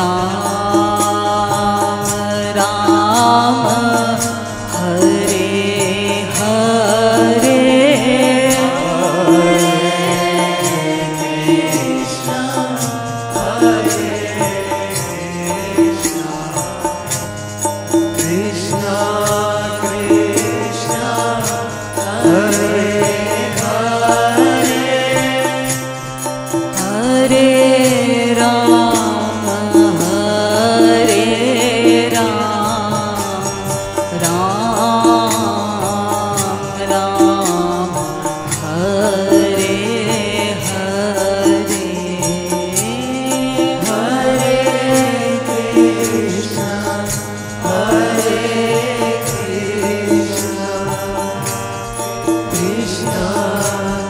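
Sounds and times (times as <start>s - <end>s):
hand drum beat: 0.0s - 54.0s
small hand cymbals: 0.0s - 54.0s
steady held drone tones: 0.0s - 54.0s
voices singing devotional song: 0.0s - 54.0s.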